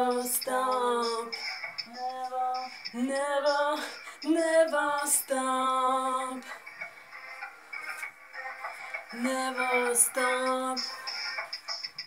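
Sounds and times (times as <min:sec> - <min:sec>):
woman singing pop song: 0:00.0 - 0:06.6, 0:09.0 - 0:11.4
synth backing track: 0:00.0 - 0:12.0.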